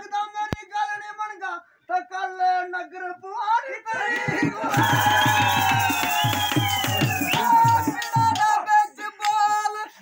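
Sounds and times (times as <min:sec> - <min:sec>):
drum beating steadily: 0:04.2 - 0:08.6.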